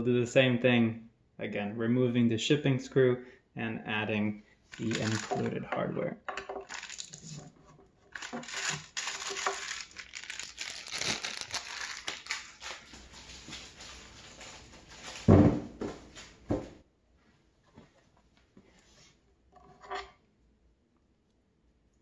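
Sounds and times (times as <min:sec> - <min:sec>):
plastic packaging crinkling: 0:04.7 - 0:05.5, 0:06.6 - 0:07.4, 0:08.1 - 0:15.1.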